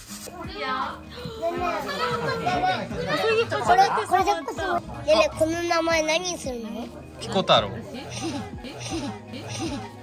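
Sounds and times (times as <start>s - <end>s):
young children talking: 0.3s - 7.2s.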